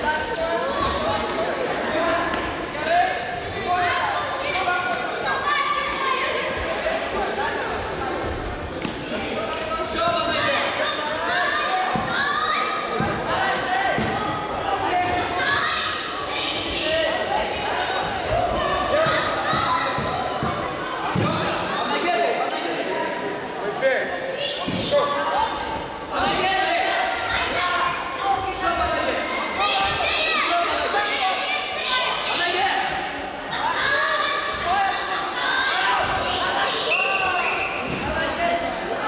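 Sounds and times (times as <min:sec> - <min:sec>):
voices shouting in a hall: 0:00.0 - 0:39.0.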